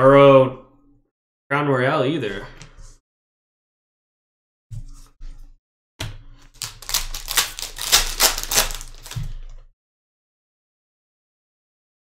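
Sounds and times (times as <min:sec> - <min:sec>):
cards clicking and crinkling: 0:06.5 - 0:09.4
foil pack rustling: 0:06.6 - 0:09.4.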